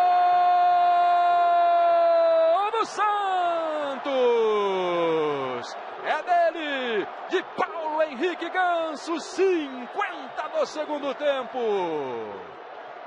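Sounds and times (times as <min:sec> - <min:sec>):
commentator shouting: 0:02.3 - 0:12.4.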